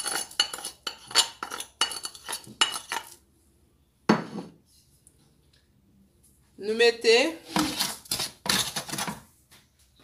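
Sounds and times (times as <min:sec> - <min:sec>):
utensils clinking against dishes: 0:00.0 - 0:03.2.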